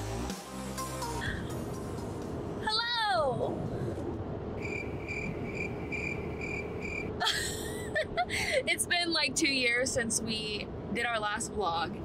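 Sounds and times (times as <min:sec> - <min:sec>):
road noise in car cabin: 0:00.0 - 0:12.0
woman laughing: 0:07.2 - 0:08.7.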